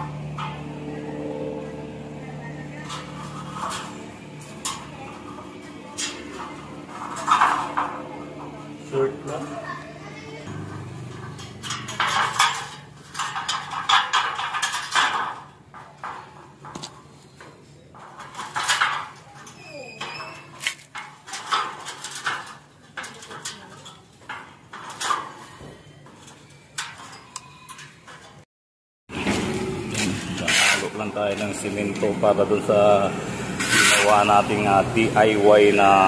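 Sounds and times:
pliers twisting wire on rebar: 26.2s - 28.4s.

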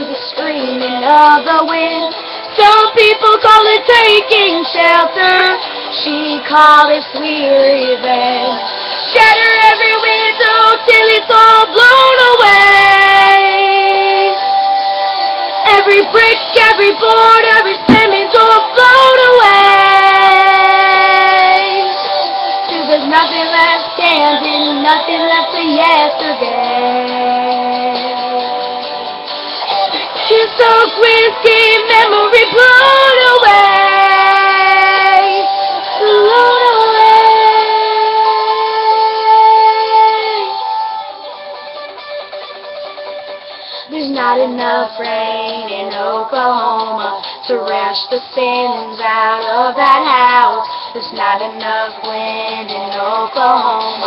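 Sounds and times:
woman singing: 0.0s - 14.5s, 15.6s - 29.0s, 30.2s - 40.8s, 43.8s - 54.0s
backing music: 11.5s - 54.0s
instrumental backing track with guitar: 37.5s - 54.0s.

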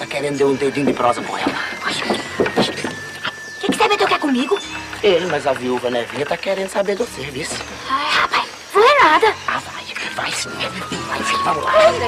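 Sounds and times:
woman's voice: 7.8s - 12.0s.

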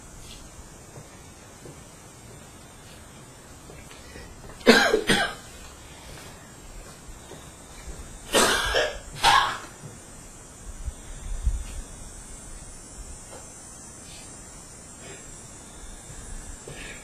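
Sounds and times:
person coughing: 4.6s - 5.4s, 8.3s - 9.7s.

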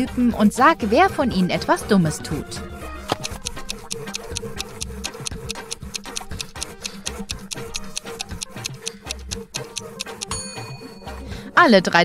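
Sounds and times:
background music: 0.0s - 12.0s
stopwatch ticking: 3.1s - 10.4s.

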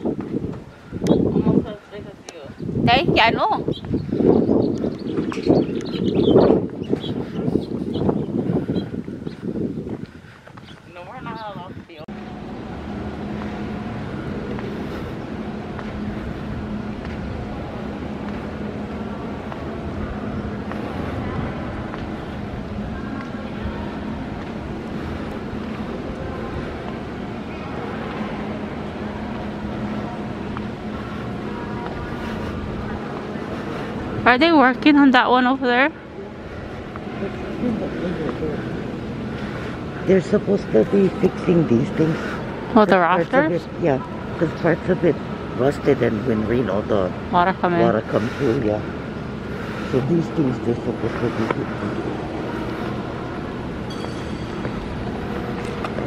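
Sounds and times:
constant low hum: 0.0s - 56.0s
echoing hangar background noise: 0.0s - 56.0s
faint distant voices: 10.2s - 53.8s.

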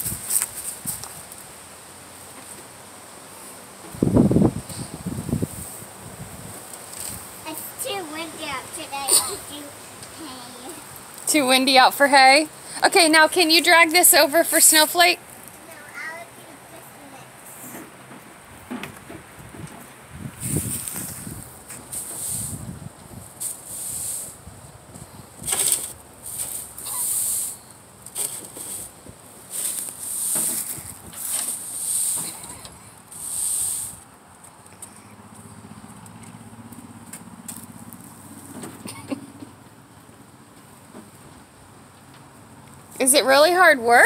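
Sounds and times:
broom sweeping hay on concrete: 4.7s - 9.1s, 20.4s - 24.5s, 25.4s - 32.5s, 33.1s - 34.0s.

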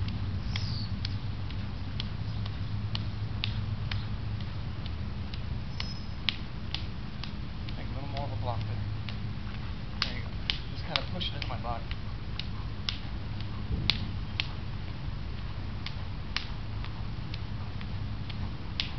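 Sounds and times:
slaps of hands and forearms: 0.6s - 15.0s, 15.8s - 18.9s
low rumble: 11.8s - 18.9s.

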